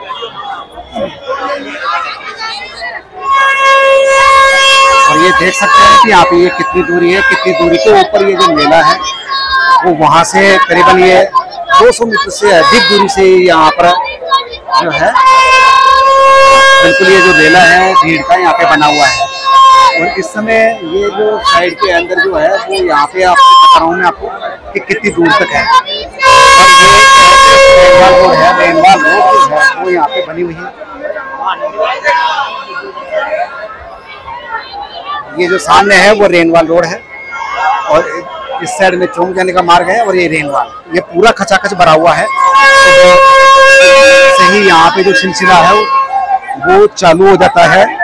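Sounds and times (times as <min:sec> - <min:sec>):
crowd chatter: 0:00.0 - 0:48.0
steady horn tone: 0:03.1 - 0:09.2, 0:14.8 - 0:33.7, 0:41.6 - 0:47.9.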